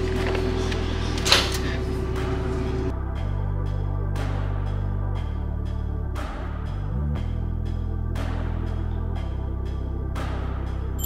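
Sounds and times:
background music low chords: 0.0s - 11.0s.

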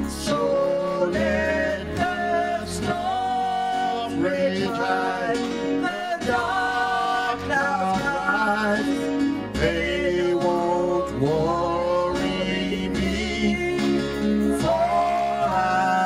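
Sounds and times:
live worship song singing: 0.0s - 16.0s.

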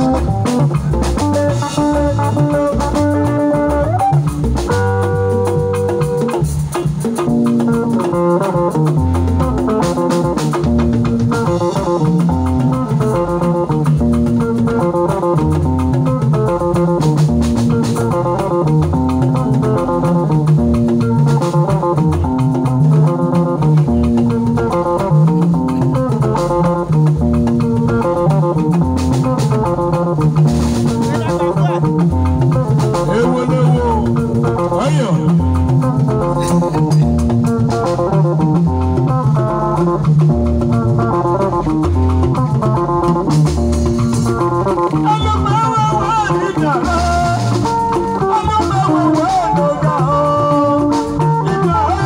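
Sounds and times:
bass line: 0.0s - 52.0s
drum kit: 0.0s - 52.0s
electric guitar riff: 0.0s - 52.0s
hand drums: 0.0s - 52.0s.

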